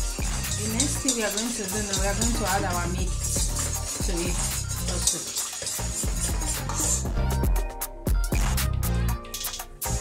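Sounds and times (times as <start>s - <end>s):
whisk scraping metal pot: 0.0s - 7.6s, 9.2s - 10.0s
background music: 0.0s - 10.0s.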